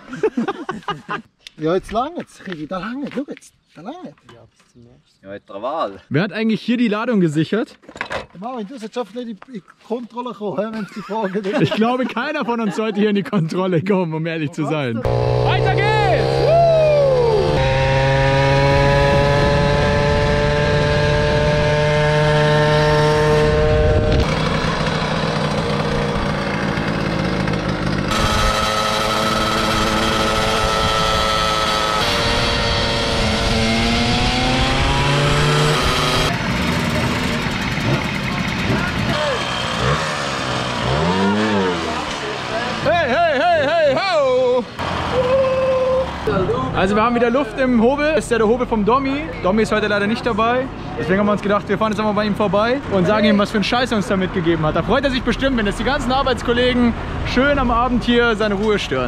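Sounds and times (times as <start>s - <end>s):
moped engines running: 15.0s - 47.3s
voice wavering in pitch: 16.2s - 17.7s.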